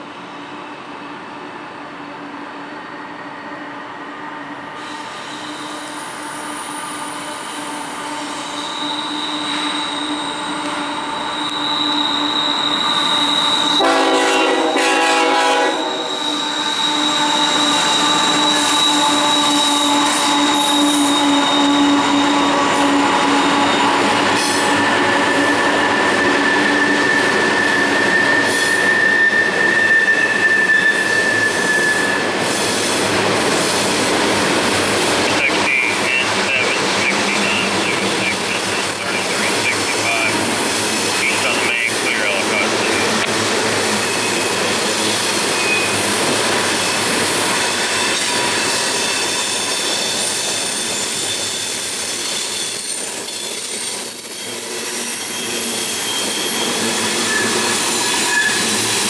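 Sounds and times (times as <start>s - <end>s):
rumble of train cars: 0.0s - 59.0s
wheel flange squeals: 4.8s - 14.0s, 15.7s - 32.9s, 43.9s - 46.1s, 46.7s - 59.0s
train horn blast: 13.6s - 16.3s.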